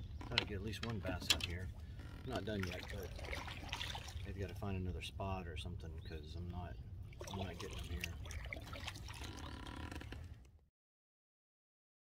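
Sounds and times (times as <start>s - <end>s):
water dripping and lapping: 0.2s - 4.8s, 7.0s - 10.4s.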